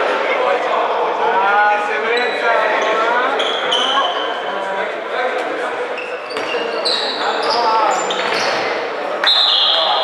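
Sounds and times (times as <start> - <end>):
shoes squeaking on wooden floor: 5.9 - 8.7
high whistle-like tone: 9.2 - 10.0.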